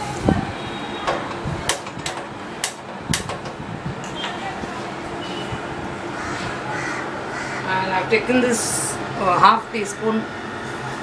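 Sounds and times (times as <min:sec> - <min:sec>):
gas burner noise: 0:00.0 - 0:11.0.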